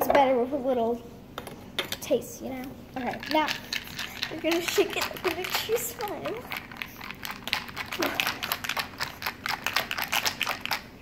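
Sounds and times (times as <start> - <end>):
ice rattling in cocktail shaker: 3.0 - 11.0.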